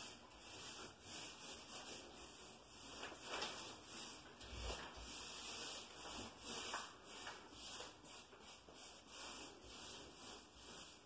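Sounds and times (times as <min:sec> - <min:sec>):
paintbrush swishing on wall: 0:00.0 - 0:11.0.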